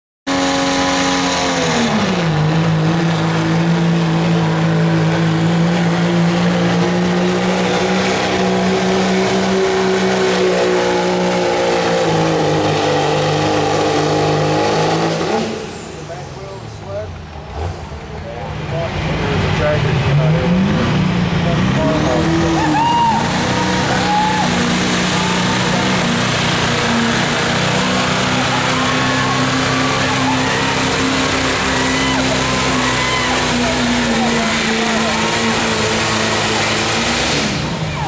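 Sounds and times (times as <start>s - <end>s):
diesel truck engine running flat out: 0.3s - 38.0s.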